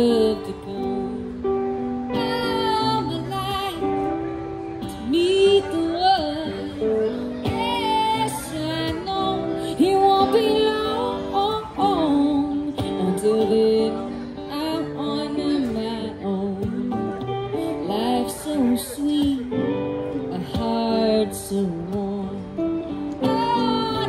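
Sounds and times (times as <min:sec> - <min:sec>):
woman singing with vibrato: 0:00.0 - 0:01.4, 0:02.1 - 0:04.2, 0:04.8 - 0:17.0, 0:17.6 - 0:24.0
acoustic guitar: 0:00.0 - 0:24.0
electric guitar: 0:00.0 - 0:24.0.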